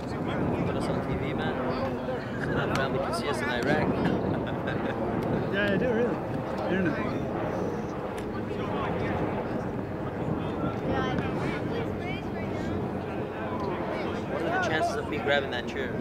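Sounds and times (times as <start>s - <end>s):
indistinct chatter of people: 0.0s - 16.0s.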